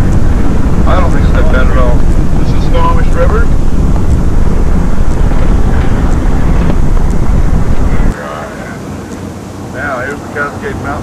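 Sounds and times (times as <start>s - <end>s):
car wind and road noise: 0.0s - 11.0s
wind buffeting microphone: 0.0s - 11.0s.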